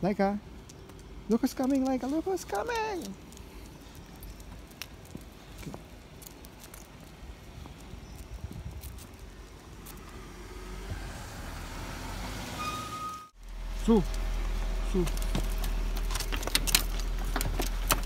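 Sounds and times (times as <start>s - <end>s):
car engine: 9.6s - 18.0s
tyres rolling: 13.8s - 18.0s.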